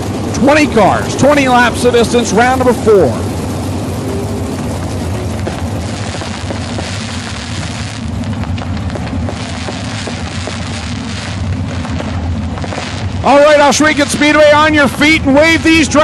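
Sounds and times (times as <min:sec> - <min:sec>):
fireworks fizzing and crackling: 0:00.0 - 0:16.0
racing car engines rumbling: 0:00.0 - 0:16.0.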